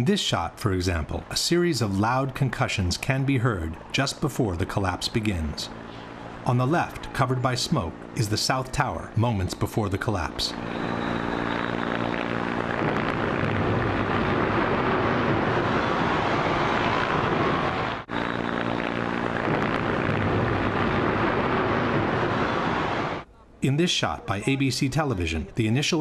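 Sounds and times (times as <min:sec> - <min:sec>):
low engine-like hum: 0:00.0 - 0:23.4
steady loud roar: 0:10.5 - 0:23.2.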